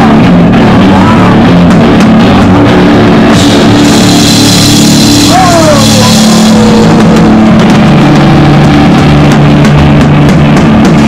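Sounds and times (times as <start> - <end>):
bass guitar: 0.0 - 11.0
distorted electric guitar: 0.0 - 11.0
drums and cymbals: 3.2 - 11.0
downward sliding pitched sound: 3.3 - 8.0.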